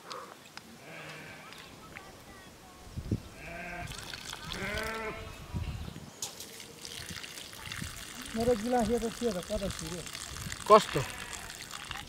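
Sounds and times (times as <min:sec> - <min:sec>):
sheep bleating: 0:00.8 - 0:01.6, 0:03.4 - 0:05.4, 0:10.8 - 0:11.7.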